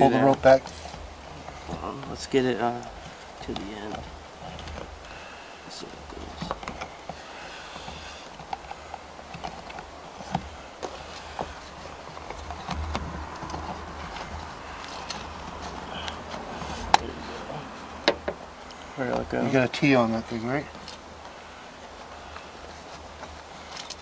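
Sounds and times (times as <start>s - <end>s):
low steady rumble: 0.0s - 24.0s.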